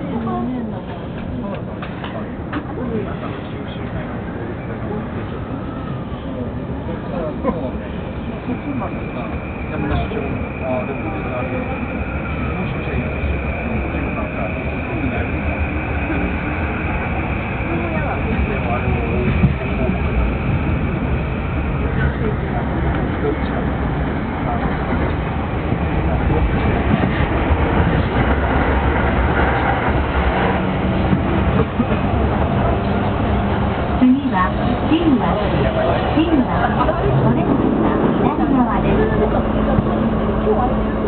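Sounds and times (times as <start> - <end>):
train wheels and motors rumbling: 0.0 - 41.0.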